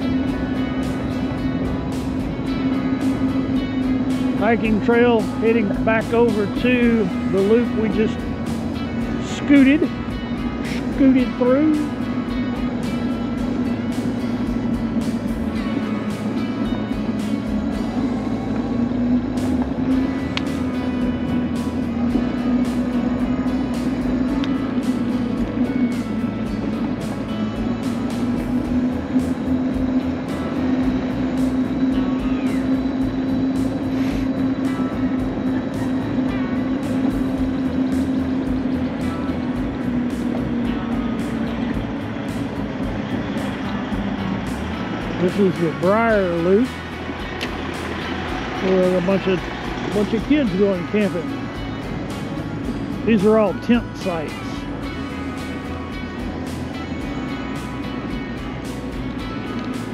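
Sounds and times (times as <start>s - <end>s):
electric motor whine: 0.0s - 59.9s.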